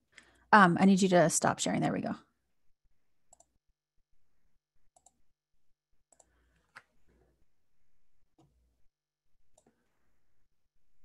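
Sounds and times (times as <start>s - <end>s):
computer mouse clicks: 3.3s - 3.6s, 5.0s - 5.2s, 6.1s - 6.9s.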